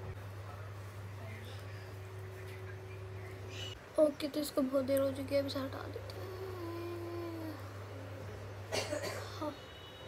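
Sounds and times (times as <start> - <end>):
low background hum: 0.0 - 10.0
woman humming: 6.1 - 7.7.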